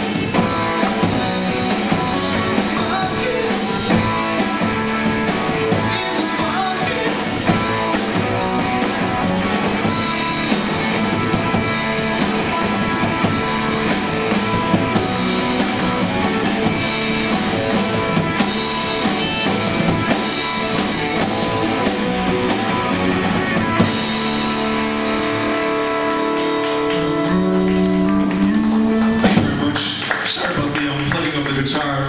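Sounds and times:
drum kit with cymbals: 0.0 - 30.6
electric guitar: 0.0 - 31.4
bass guitar: 0.0 - 32.0.

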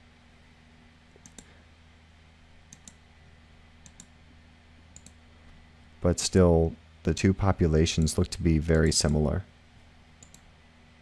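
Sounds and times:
low steady hum: 0.0 - 11.0
computer mouse clicking: 1.2 - 1.5, 2.7 - 3.0, 3.8 - 4.1, 5.0 - 5.2, 10.2 - 10.5.

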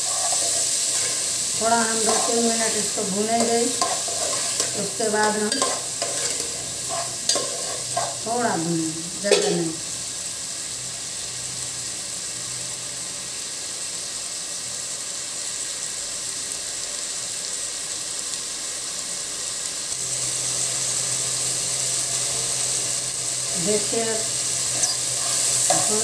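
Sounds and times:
peas sizzling in hot oil: 0.0 - 26.0.

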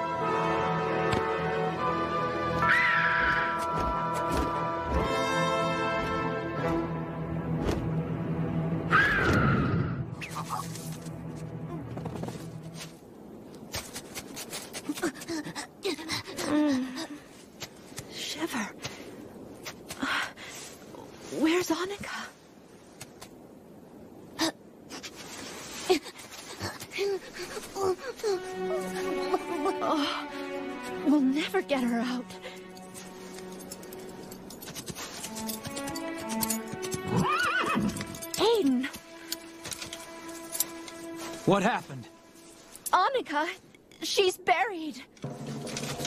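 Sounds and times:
film music: 0.0 - 13.8, 27.0 - 46.0
horse hooves clopping: 32.5 - 41.4, 45.2 - 46.0
horse whinnying: 37.0 - 38.0.

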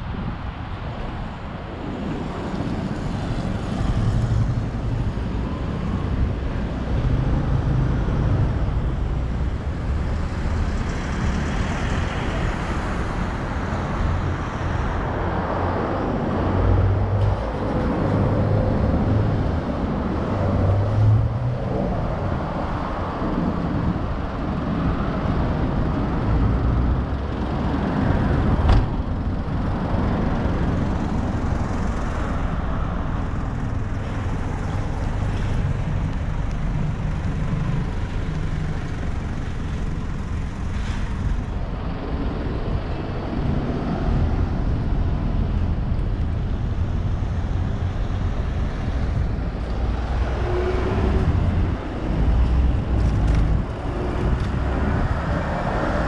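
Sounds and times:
road traffic rumble: 0.0 - 56.0.

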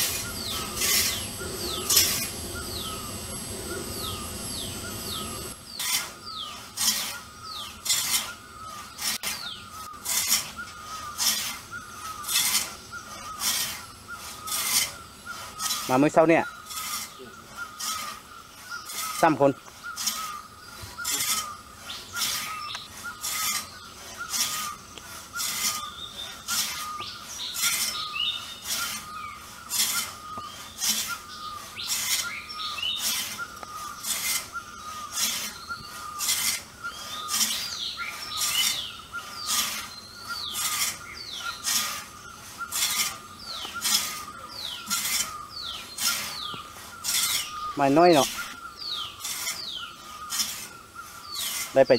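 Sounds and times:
birds chirping: 0.0 - 51.9
frame saw rasping through log: 0.0 - 51.9.

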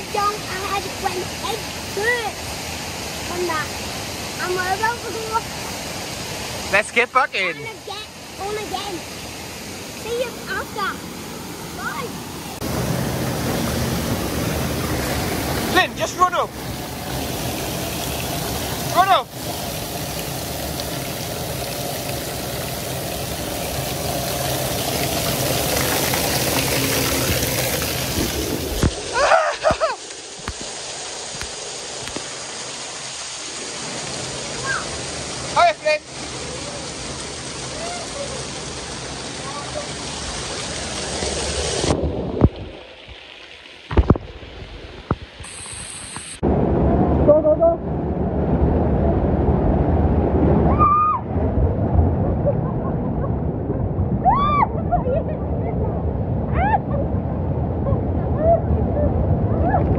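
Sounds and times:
water rushing and splashing: 0.0 - 59.9.

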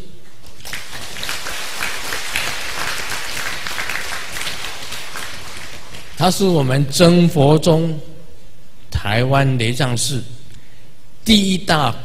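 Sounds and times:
audience applauding: 0.4 - 6.4.

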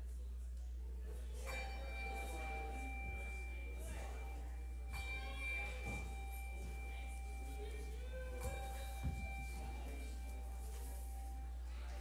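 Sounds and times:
low electrical hum: 0.0 - 12.0
bell ringing: 1.4 - 12.0.

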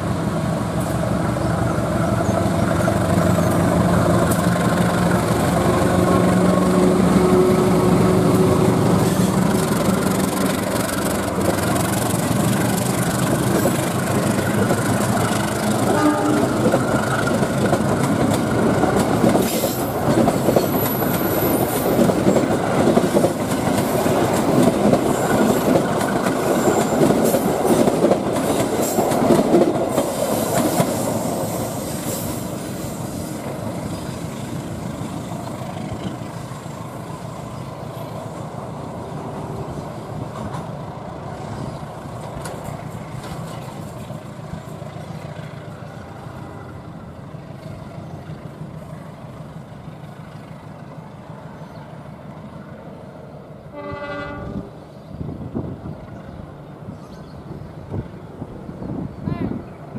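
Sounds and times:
locomotive engine droning: 0.0 - 54.9
train wheels clicking over rail joints: 0.8 - 38.4, 41.4 - 45.7.

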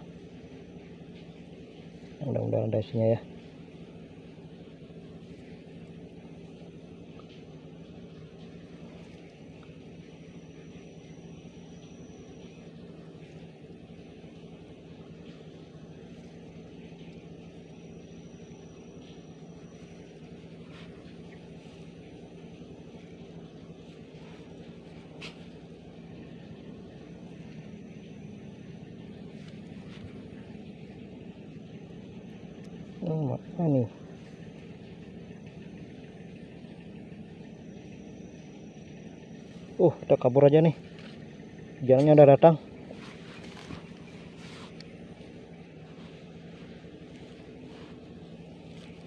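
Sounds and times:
distant motor hum: 0.0 - 49.0.

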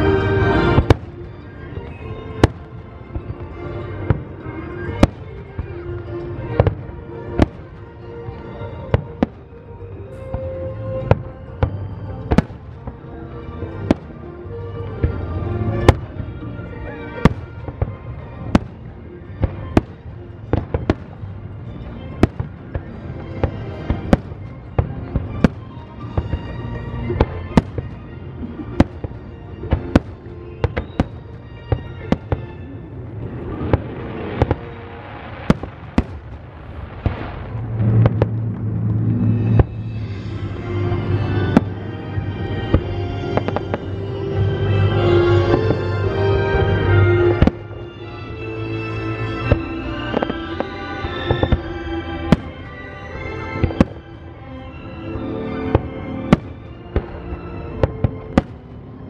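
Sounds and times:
fireworks bursting: 0.0 - 8.0, 17.2 - 48.3, 49.1 - 54.2, 55.1 - 58.7
music playing: 0.0 - 59.0.

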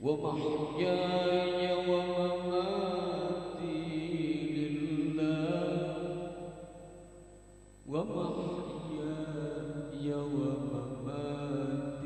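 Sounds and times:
man reciting melodically over pa: 0.0 - 6.5, 7.9 - 12.0.

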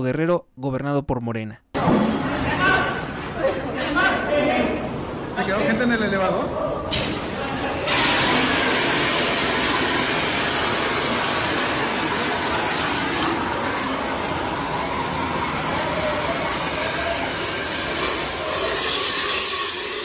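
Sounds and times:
loud rushing fire noise: 6.9 - 20.0.

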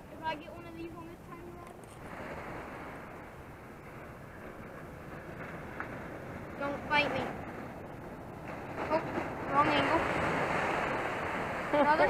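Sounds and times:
ocean surf on beach: 0.0 - 12.0.

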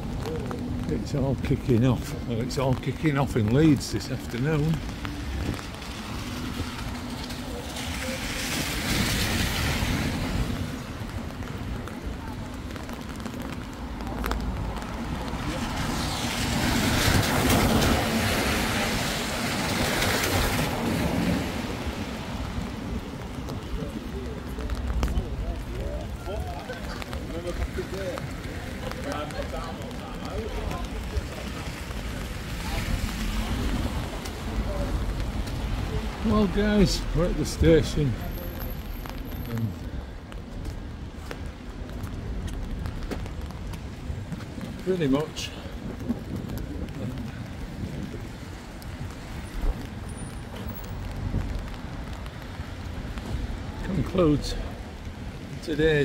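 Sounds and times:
wind rumble on microphone: 4.2 - 54.0.

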